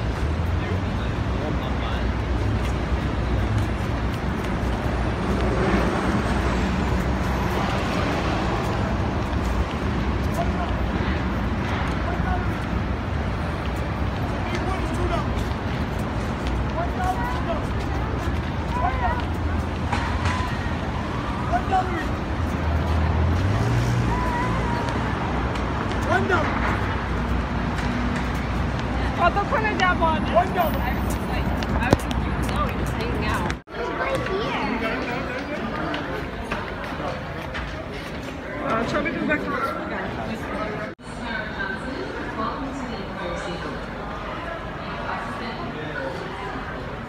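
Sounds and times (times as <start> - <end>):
passers-by talking: 0.0 - 47.0
road traffic rumble: 0.0 - 47.0.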